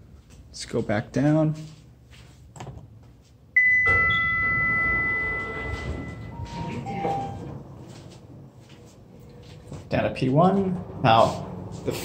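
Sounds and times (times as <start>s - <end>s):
two short lower tones: 3.6s - 7.6s
elevator arrival chime: 3.6s - 7.7s.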